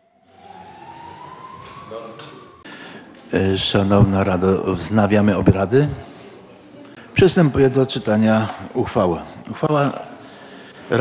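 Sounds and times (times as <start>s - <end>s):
whistle-like tone sliding upward: 0.0s - 2.6s
faint room murmur: 0.2s - 11.0s.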